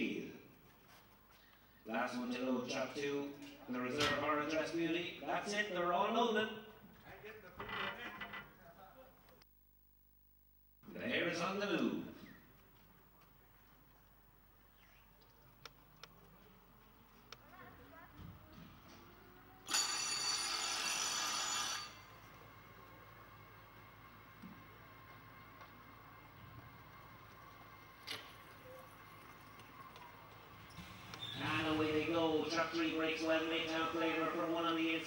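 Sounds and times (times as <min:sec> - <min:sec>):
electric bell ringing: 0:19.6 - 0:22.3.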